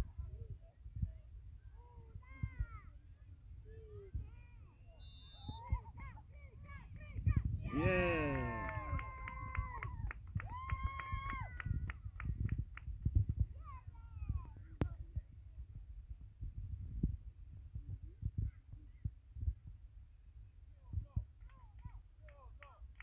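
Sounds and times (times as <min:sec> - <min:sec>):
wind rumble on microphone: 0:00.0 - 0:04.8, 0:05.4 - 0:23.0
children cheering and shouting: 0:07.7 - 0:09.8
quick clapping: 0:07.8 - 0:13.1, 0:21.4 - 0:23.0.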